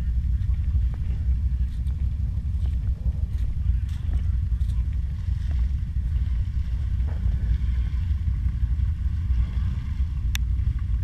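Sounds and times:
atv engine low rumble: 0.0 - 11.0.

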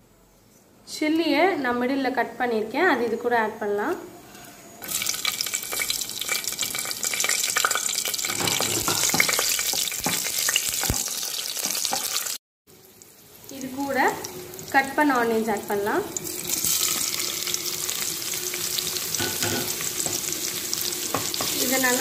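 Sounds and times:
spices sizzling in hot oil: 4.8 - 22.0.

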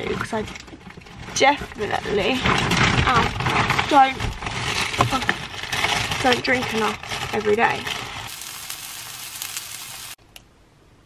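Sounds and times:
sausages sizzling in a frying pan: 8.3 - 10.2.

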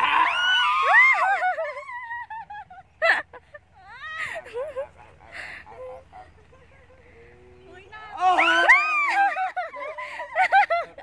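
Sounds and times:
woman shrieking: 0.0 - 1.5, 8.2 - 9.3.

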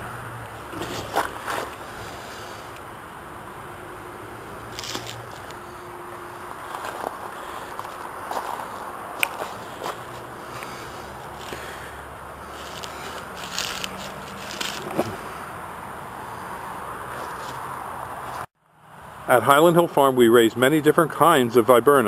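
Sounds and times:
crackling scraping handling noise: 0.7 - 2.9, 4.7 - 15.4
footsteps on dry leaves: 4.7 - 15.3.

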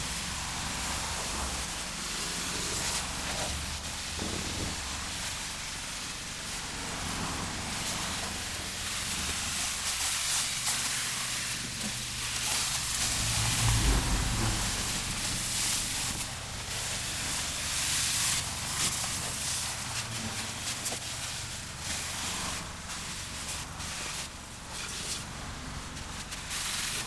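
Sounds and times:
high-pressure water spraying on car: 0.0 - 27.0.

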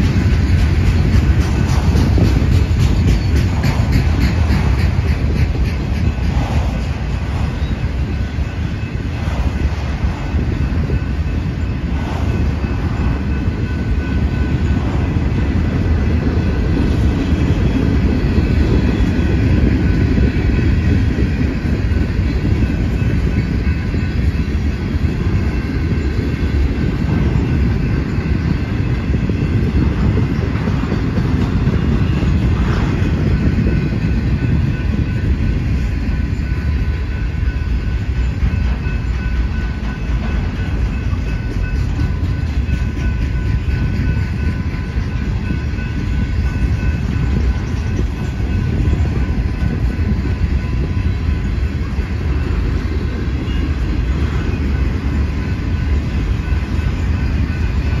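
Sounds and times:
faint ringing from wheels: 0.0 - 58.0
train wheels rumbling on rail: 0.0 - 58.0.

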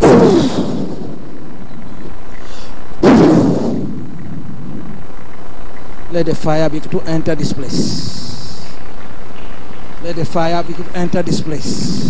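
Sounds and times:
loud blast-like burst: 0.0 - 1.6, 2.5 - 8.7.

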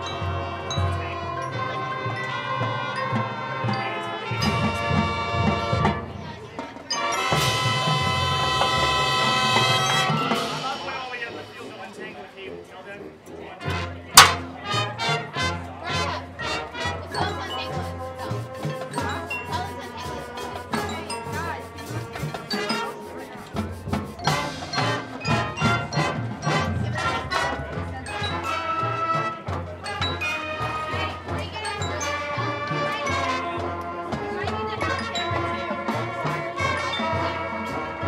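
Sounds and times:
timpani: 0.0 - 11.9, 13.6 - 38.0
mallet percussion: 0.0 - 12.1, 13.6 - 38.0
marching band playing: 0.0 - 38.0.

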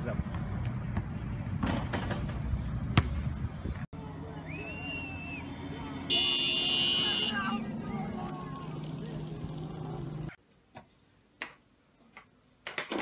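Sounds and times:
car engine and road noise: 0.0 - 10.4
voices: 4.0 - 10.4.

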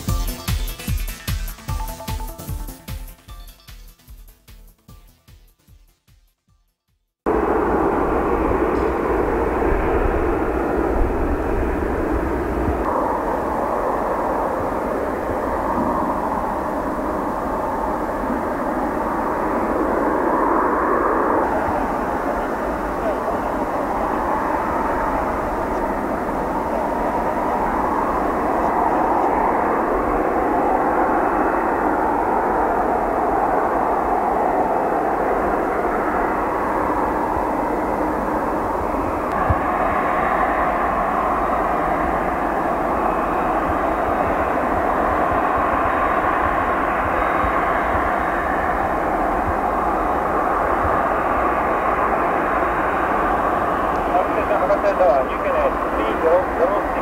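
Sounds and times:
jet engines running at low power: 7.3 - 57.0.

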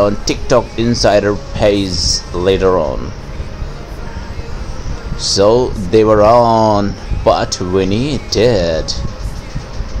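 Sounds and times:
low hum: 0.0 - 10.0
steady rushing noise: 0.0 - 10.0.

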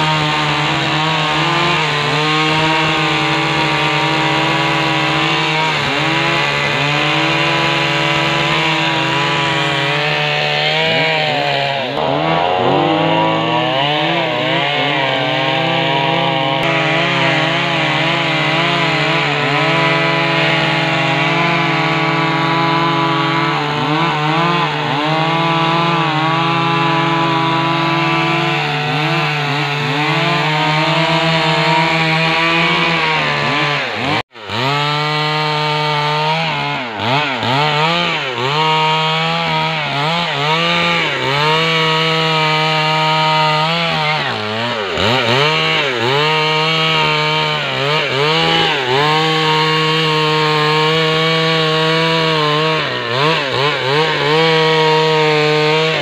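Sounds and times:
chainsaw cutting log: 0.0 - 56.0.

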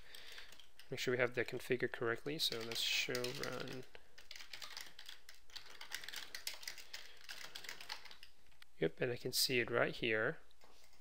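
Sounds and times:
keyboard typing: 2.4 - 8.3.

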